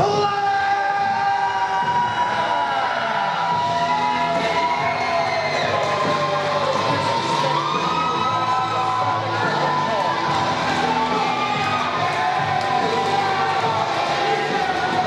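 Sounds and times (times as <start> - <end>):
crowd cheering and shouting: 0.0 - 15.0
music over pa system: 0.0 - 15.0.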